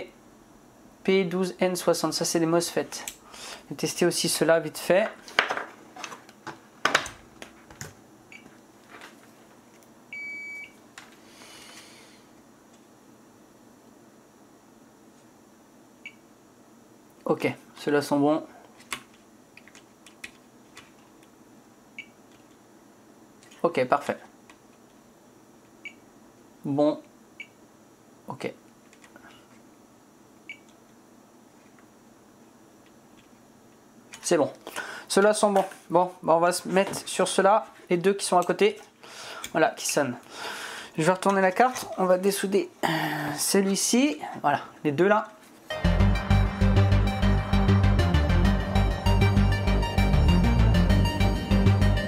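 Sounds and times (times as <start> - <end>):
faint room hiss: 0.0 - 45.7
multimeter beeping: 10.2 - 10.8.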